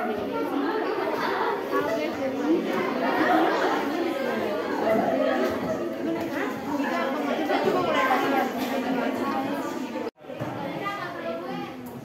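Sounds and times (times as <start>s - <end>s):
students chattering: 0.0s - 12.0s.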